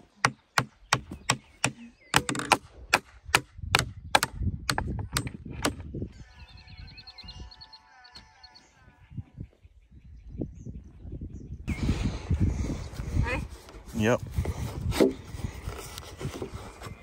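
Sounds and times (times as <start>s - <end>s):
hammer striking wooden beam: 0.0s - 5.8s.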